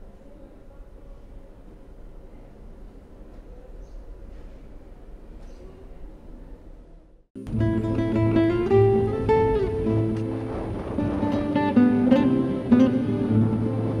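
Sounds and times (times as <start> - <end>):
instrumental music with plucked guitar: 7.4 - 14.0.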